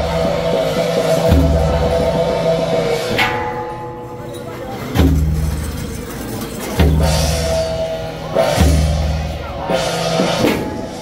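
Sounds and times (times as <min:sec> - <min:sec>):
gong or cymbal crash: 0:00.0 - 0:06.0
deep drum beats: 0:00.0 - 0:11.0
held pitched note: 0:00.0 - 0:11.0.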